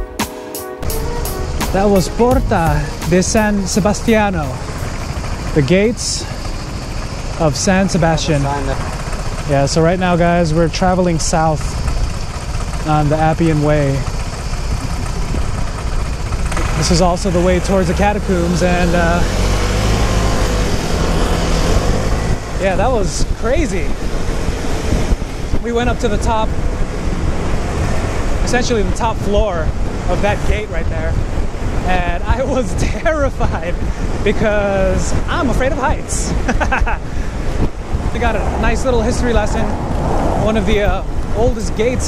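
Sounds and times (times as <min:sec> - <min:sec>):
electronic music with bass beat: 0:00.0 - 0:05.7
scooter engine idling: 0:01.0 - 0:18.9
man speaking: 0:01.6 - 0:04.8, 0:05.5 - 0:06.4, 0:07.4 - 0:08.9, 0:09.5 - 0:11.8, 0:12.9 - 0:14.1, 0:16.8 - 0:19.3, 0:22.6 - 0:23.9, 0:31.9 - 0:36.5, 0:38.1 - 0:39.8, 0:40.4 - 0:42.0
wind on microphone: 0:20.6 - 0:28.5, 0:31.0 - 0:42.0.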